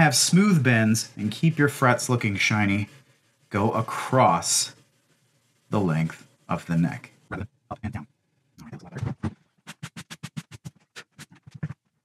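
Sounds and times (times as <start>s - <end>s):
steel wool scrubbing guitar frets: 0.0s - 4.8s.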